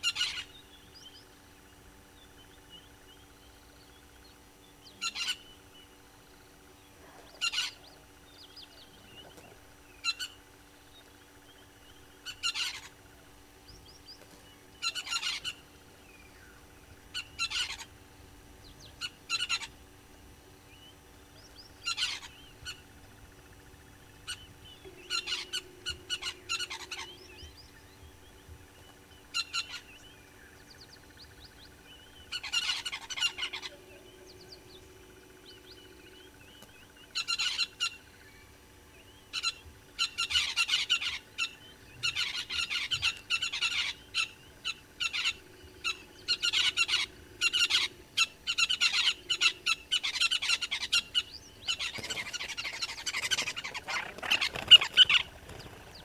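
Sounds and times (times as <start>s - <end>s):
birds chattering calls: 0.0s - 56.0s.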